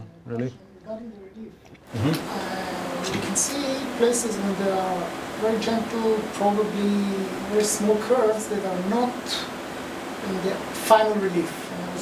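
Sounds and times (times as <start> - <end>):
steady hiss: 1.7 - 12.0
man murmuring: 1.9 - 3.3.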